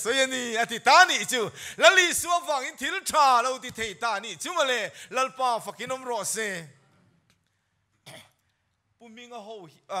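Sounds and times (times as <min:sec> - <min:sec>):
man clearing throat: 0:08.0 - 0:08.4.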